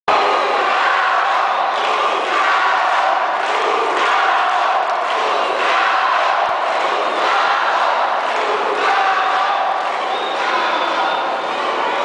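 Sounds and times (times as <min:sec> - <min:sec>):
crowd cheering and shouting: 0:00.1 - 0:12.0.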